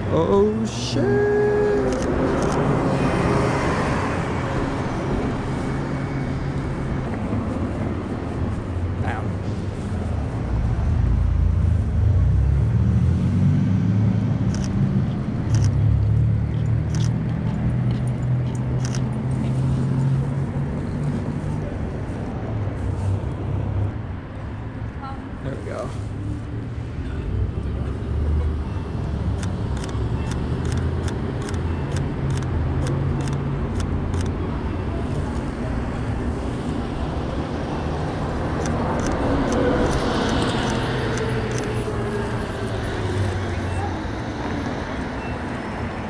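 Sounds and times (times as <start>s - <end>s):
street traffic: 0.0s - 46.0s.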